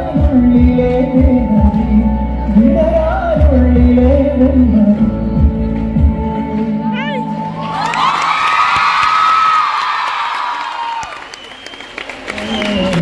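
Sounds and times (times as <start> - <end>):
music: 0.0 - 8.7
concert audience cheering and screaming: 7.6 - 13.0.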